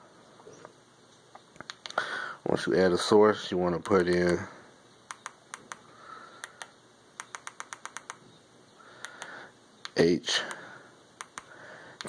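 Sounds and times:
short faint clicks: 0:01.1 - 0:02.0, 0:05.1 - 0:05.8, 0:09.0 - 0:10.6, 0:11.2 - 0:12.0.

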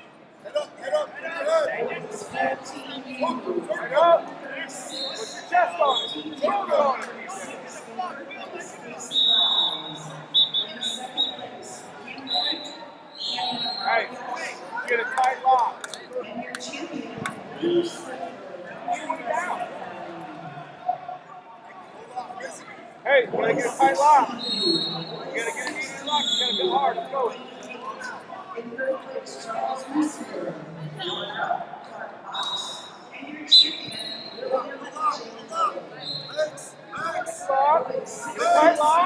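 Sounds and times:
voices calling out in echoing hall: 0:00.0 - 0:39.0
referee whistle blasts: 0:33.5 - 0:34.5.

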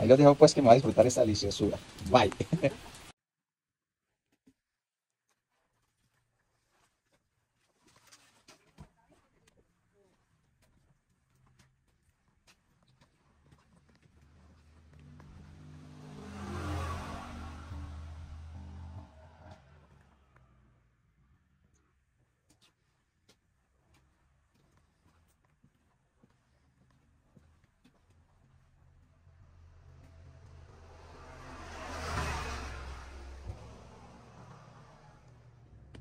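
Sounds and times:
vehicle engine running: 0:14.2 - 0:20.5, 0:28.5 - 0:36.0.

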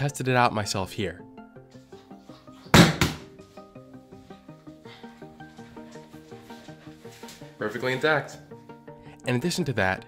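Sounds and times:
background music: 0:00.0 - 0:10.0
phone hitting floor thud: 0:02.7 - 0:03.3.

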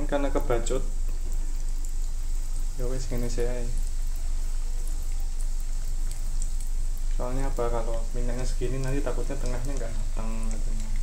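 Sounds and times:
food sizzling in oil: 0:00.0 - 0:11.0
low steady hum: 0:00.0 - 0:11.0.

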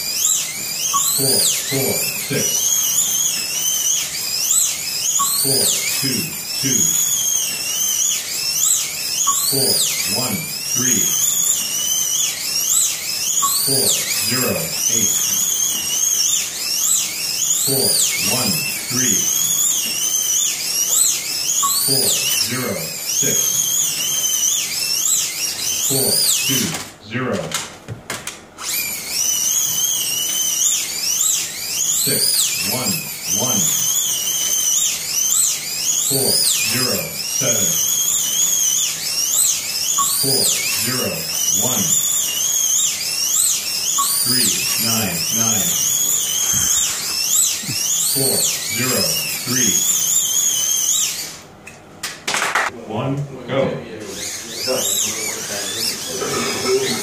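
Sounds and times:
slot car motors whining: 0:00.0 - 0:52.7, 0:54.0 - 0:57.0.

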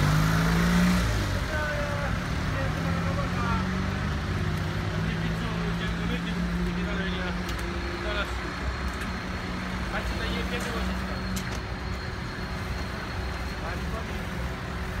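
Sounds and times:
street traffic noise: 0:00.0 - 0:15.0
voices: 0:01.1 - 0:15.0.

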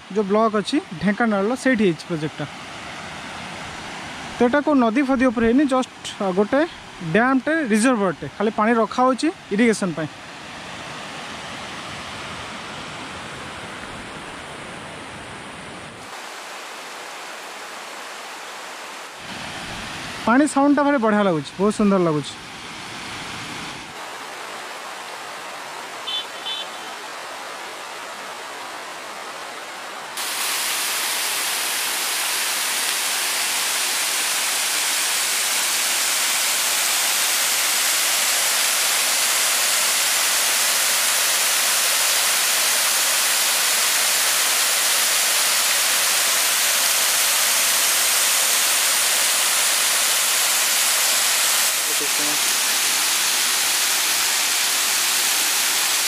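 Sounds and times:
water falling over weir: 0:23.9 - 0:56.0.

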